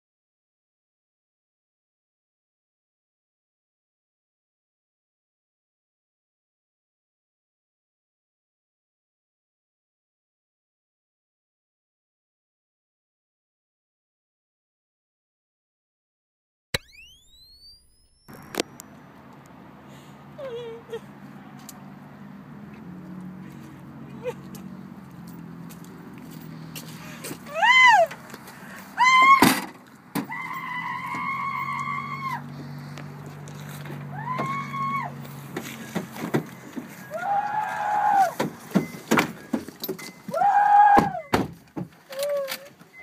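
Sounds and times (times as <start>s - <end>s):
low steady car hum: 18.0s - 43.0s
wordless voice cries: 20.4s - 21.2s, 27.0s - 28.2s, 28.9s - 29.5s.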